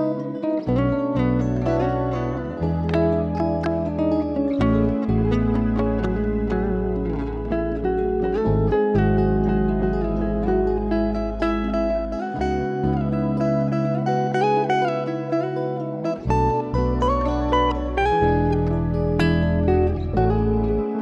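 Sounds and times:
clean electric guitar melody: 0.0 - 21.0
held low bass notes: 0.0 - 21.0.

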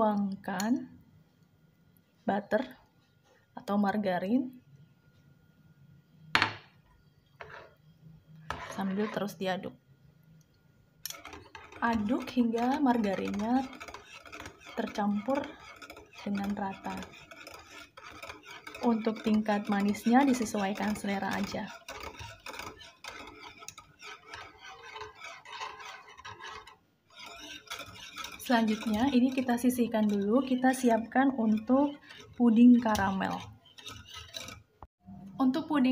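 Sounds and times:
spoon scraping in pan: 7.4 - 9.4, 11.0 - 34.7.

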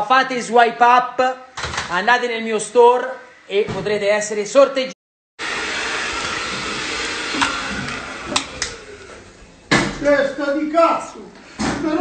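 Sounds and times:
vacuum cleaner motor running: 5.4 - 9.6.

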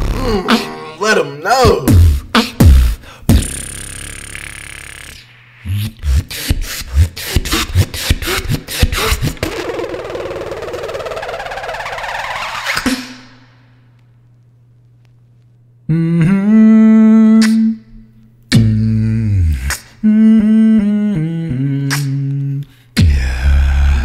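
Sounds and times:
person beatboxing: 0.0 - 11.3, 17.2 - 24.0.

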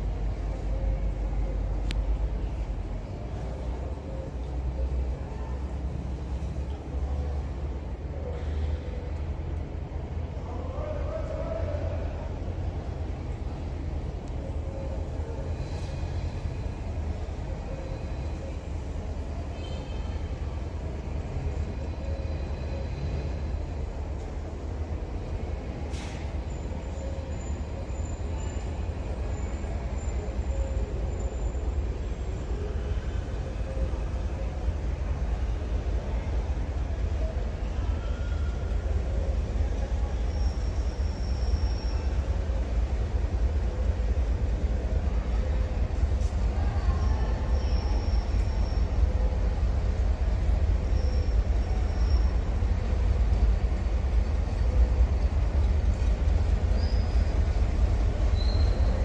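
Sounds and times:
locomotive engine rumble: 0.0 - 59.0.

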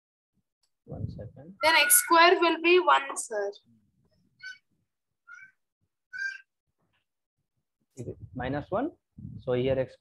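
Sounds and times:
high-pitched animal calls: 4.4 - 6.5.

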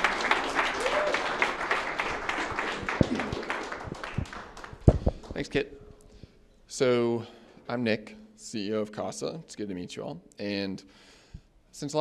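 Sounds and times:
audience applauding: 0.0 - 5.4.

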